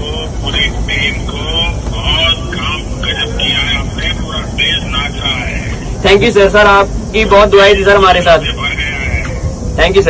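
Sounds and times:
man speaking through phone speaker: 0.0s - 10.0s
vehicle rumble: 0.0s - 10.0s.

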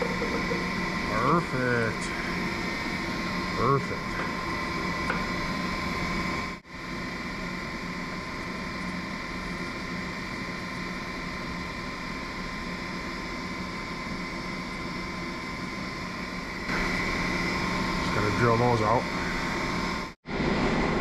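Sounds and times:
ventilation fan hum: 0.0s - 21.0s.

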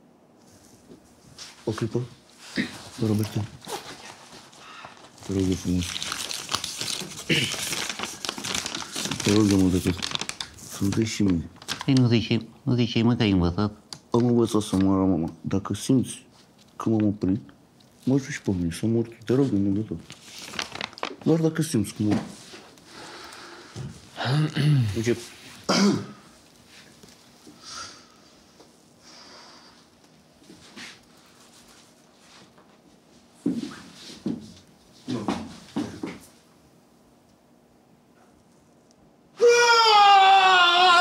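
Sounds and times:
paper crinkling: 3.0s - 12.4s, 19.3s - 22.0s
man clearing his throat: 7.3s - 7.7s, 24.2s - 25.0s, 25.7s - 26.2s.

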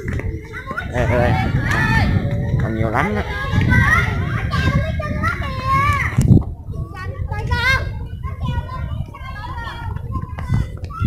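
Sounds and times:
children talking and calling out: 0.0s - 11.0s
low rumble: 0.0s - 11.0s.

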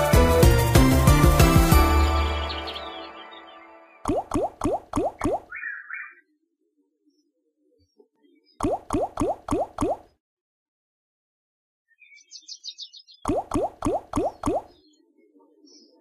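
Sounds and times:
slot game win music: 0.0s - 4.0s.

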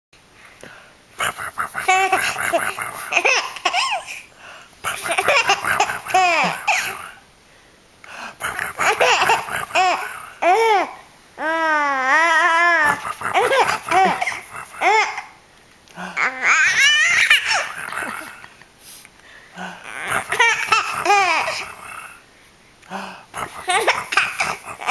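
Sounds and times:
baby laughing and squealing: 1.8s - 4.3s, 5.0s - 7.1s, 8.7s - 15.3s, 16.2s - 18.5s, 19.8s - 21.8s, 23.5s - 24.9s
infant girl squealing laughs: 16.2s - 18.5s.

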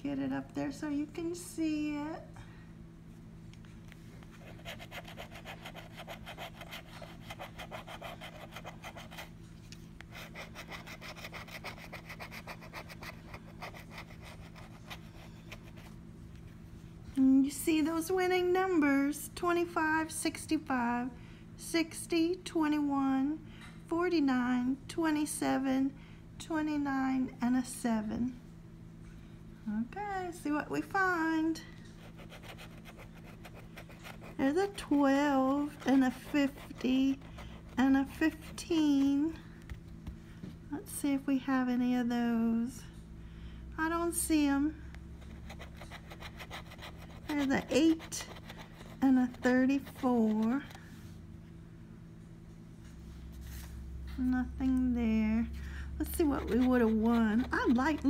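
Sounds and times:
key scratching lottery ticket: 4.4s - 9.3s, 45.3s - 50.7s, 56.2s - 58.0s.

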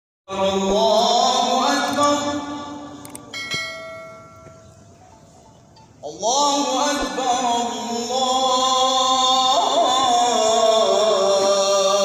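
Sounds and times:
man singing call to prayer: 0.3s - 3.3s, 6.0s - 12.0s
sharp clicks: 3.0s - 3.3s
bell-like chime: 3.3s - 4.8s.

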